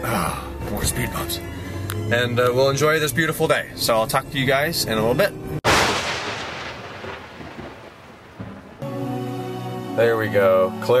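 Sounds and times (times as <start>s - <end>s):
thunder clap: 5.6s - 9.0s.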